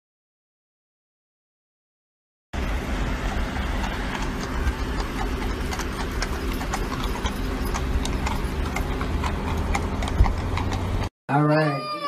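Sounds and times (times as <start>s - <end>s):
horse hooves clip-clopping on pavement: 2.6s - 11.1s.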